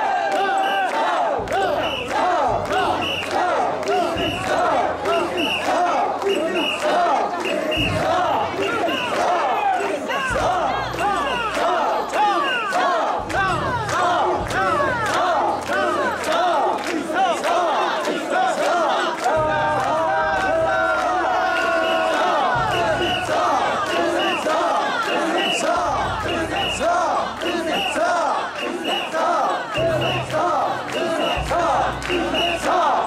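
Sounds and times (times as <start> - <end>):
crowd shouting a chant: 0.0 - 33.0.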